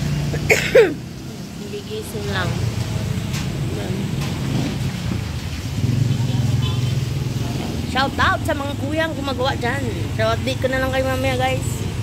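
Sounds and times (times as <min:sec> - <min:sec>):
vehicle engine running: 0:01.1 - 0:12.0.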